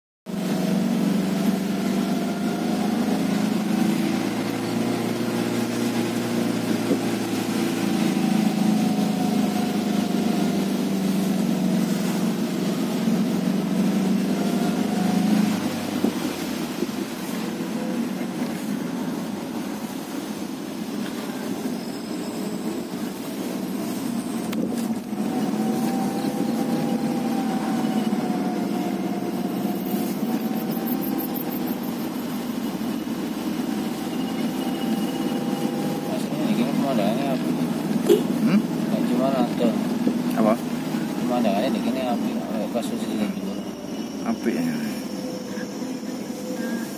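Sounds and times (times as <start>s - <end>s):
car engine heard from cabin: 0.3s - 46.9s.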